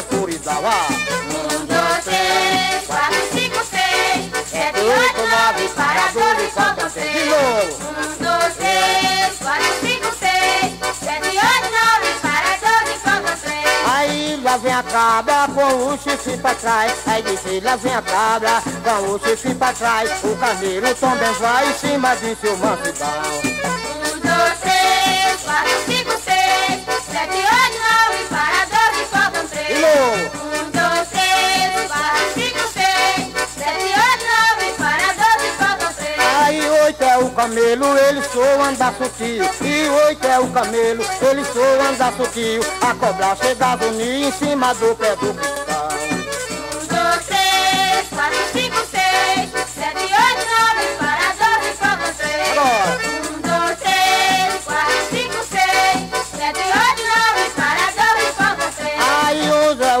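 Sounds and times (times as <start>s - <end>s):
steady percussion beat: 0.0s - 60.0s
voices singing with band: 0.0s - 60.0s.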